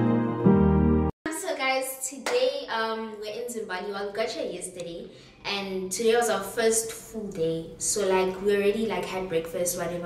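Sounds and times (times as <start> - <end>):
music: 0.0 - 1.2.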